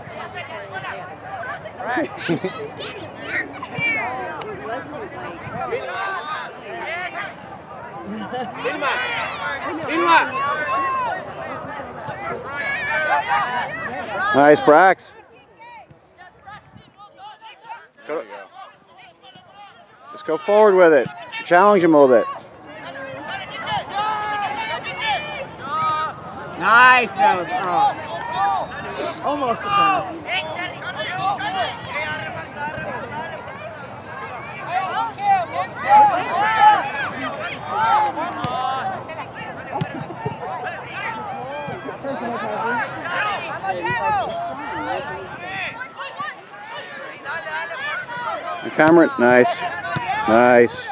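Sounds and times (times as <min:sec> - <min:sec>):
faint voices calling out: 0:00.0 - 0:50.9.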